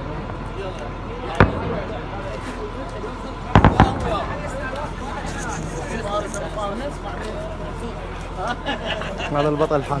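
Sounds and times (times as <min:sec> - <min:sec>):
men talking: 0:00.0 - 0:10.0
sharp bangs: 0:01.3 - 0:02.4, 0:03.4 - 0:05.0.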